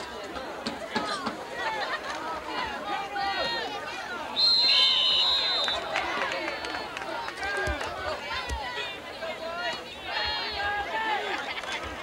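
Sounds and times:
spectators talking and calling out: 0.0s - 12.0s
lower whistle: 4.4s - 5.8s
shrill whistle blast: 4.4s - 5.8s.

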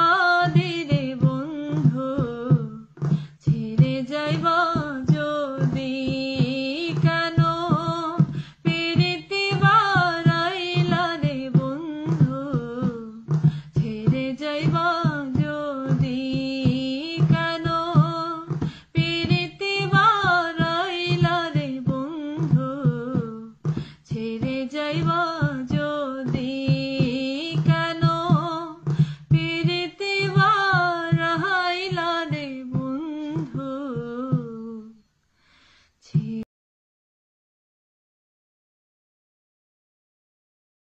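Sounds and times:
percussion beat: 0.0s - 35.0s
woman singing: 0.0s - 35.1s, 36.0s - 36.5s
soft knock: 0.4s - 34.6s.

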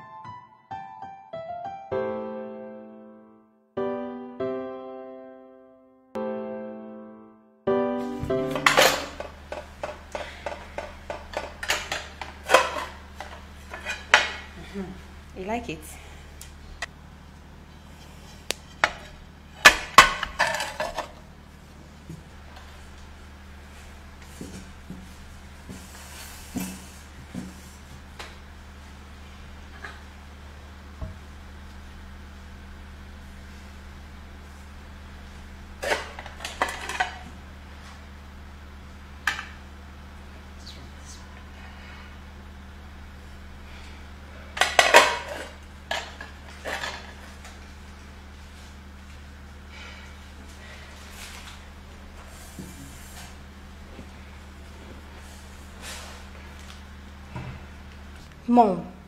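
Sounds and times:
dishes and utensils clattering: 8.4s - 14.6s, 18.7s - 21.2s, 35.8s - 37.3s, 44.6s - 47.3s
plates and cutlery clattering on glass: 8.5s - 14.5s.

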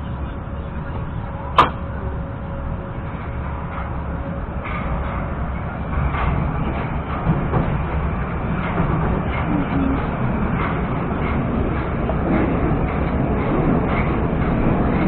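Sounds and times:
metro train rumbling: 0.0s - 15.0s.

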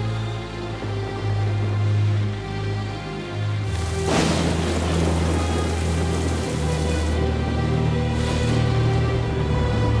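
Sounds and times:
dark low music drone: 0.0s - 10.0s
steady rain-like hiss: 3.5s - 8.7s.

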